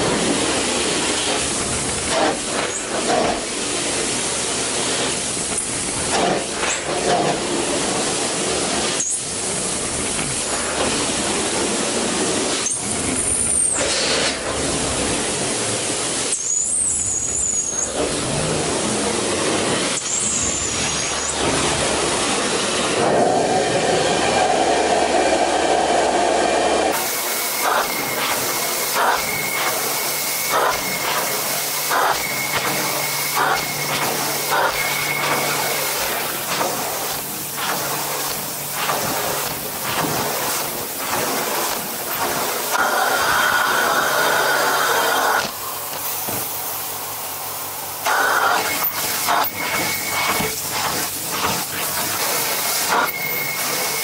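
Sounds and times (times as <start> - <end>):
vacuum suction hiss: 20.9 - 54.0.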